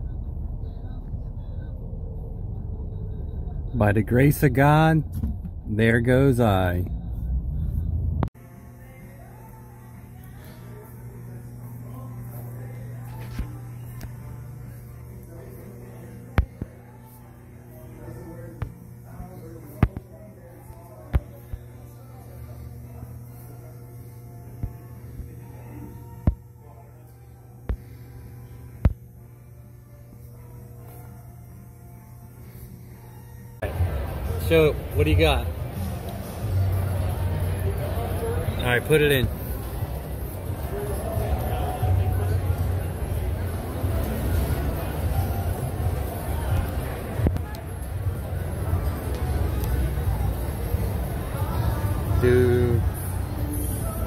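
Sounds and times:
faint background music: 0.0s - 54.0s
low room hum: 0.0s - 54.0s.

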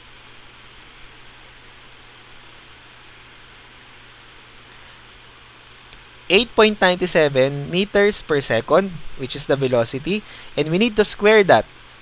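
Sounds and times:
background hiss: 0.0s - 12.0s
faint low hum: 0.0s - 12.0s.

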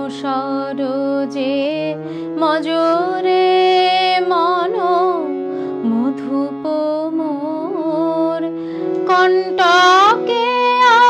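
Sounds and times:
held accompaniment notes: 0.0s - 11.0s
woman singing devotional song: 0.0s - 11.0s.

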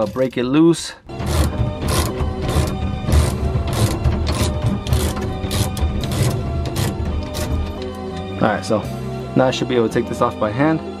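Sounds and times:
background music: 0.0s - 11.0s
hand ratchet clicking: 1.2s - 8.0s.

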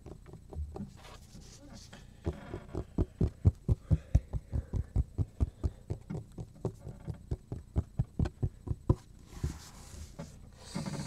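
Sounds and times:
hand tapping cutting board: 2.3s - 9.6s.

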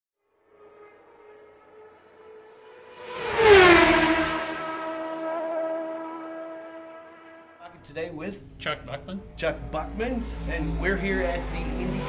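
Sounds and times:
race car passing at speed: 0.2s - 7.6s, 9.3s - 12.0s.

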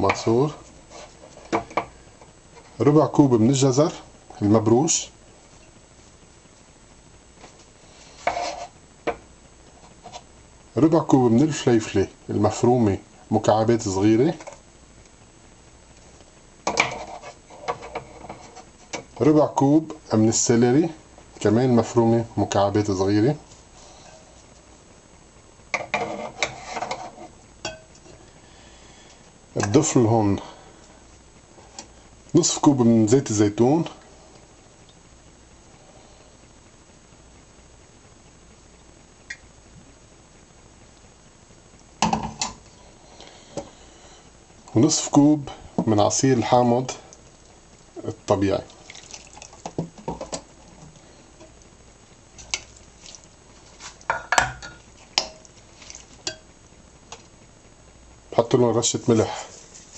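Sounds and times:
kitchenware clattering: 54.1s - 55.4s.

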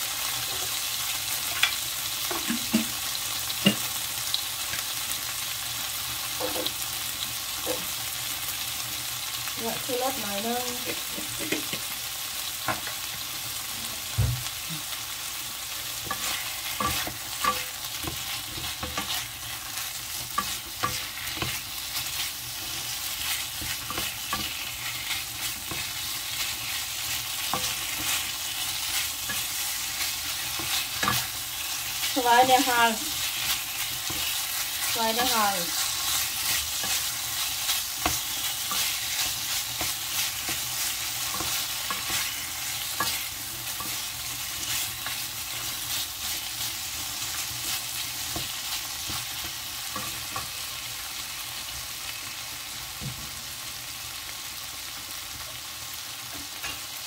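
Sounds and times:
meat sizzling in a frying pan: 0.0s - 57.0s
spatula scraping a pan: 15.8s - 50.8s.

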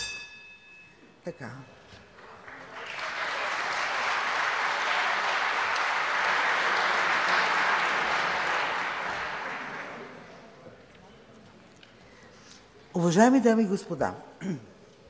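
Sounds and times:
crowd applauding: 2.1s - 10.7s.

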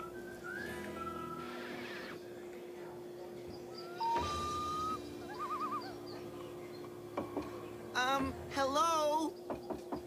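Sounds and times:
cartoon bird call: 3.9s - 6.1s.

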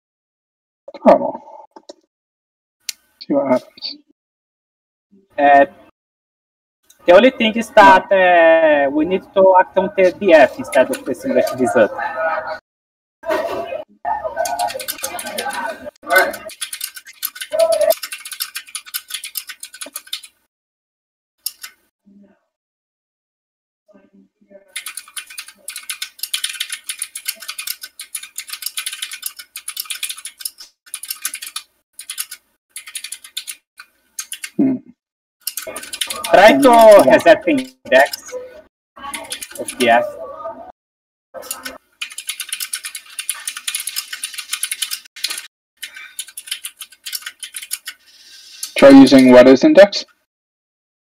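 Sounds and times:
computer keyboard typing: 10.3s - 11.7s, 14.4s - 20.4s, 21.4s - 21.8s, 24.7s - 34.6s, 35.4s - 38.4s, 39.0s - 40.0s, 41.4s - 49.3s.

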